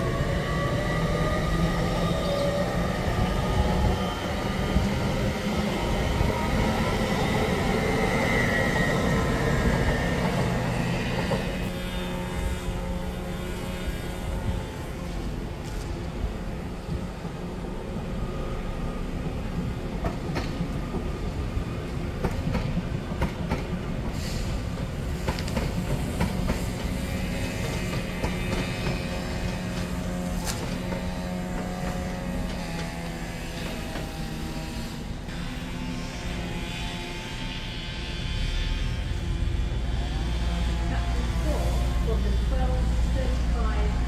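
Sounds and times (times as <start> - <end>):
train drone: 0.0 - 44.0.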